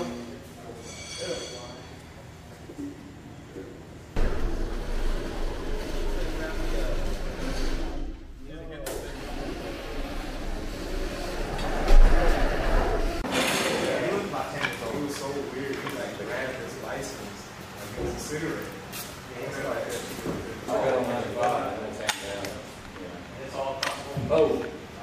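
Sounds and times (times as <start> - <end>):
work noise: 4.1 - 16.0
steady low rumble: 4.2 - 13.2
indistinct voices: 4.2 - 15.7.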